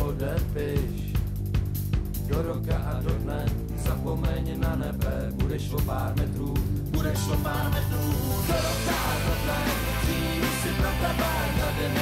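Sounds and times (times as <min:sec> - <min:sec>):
loud rock band music: 0:00.0 - 0:12.0.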